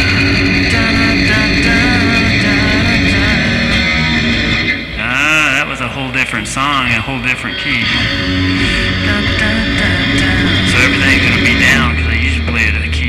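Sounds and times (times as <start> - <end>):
electric guitar playing rock: 0.0 - 13.0.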